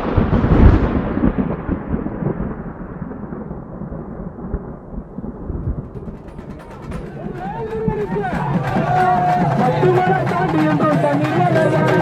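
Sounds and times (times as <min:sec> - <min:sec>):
thunder crash: 0:00.0 - 0:09.5.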